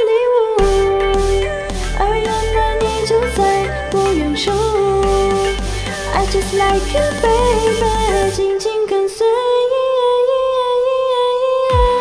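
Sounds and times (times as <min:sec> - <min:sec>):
woman singing into microphone: 0:00.0 - 0:12.0
sparse backing track: 0:00.6 - 0:08.6.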